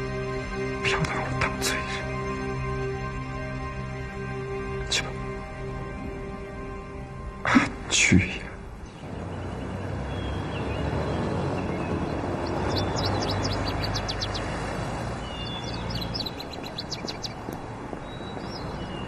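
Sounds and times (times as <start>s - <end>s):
minibus engine humming: 0.0s - 19.0s
traffic noise: 0.0s - 19.0s
small birds chirping: 8.0s - 19.0s.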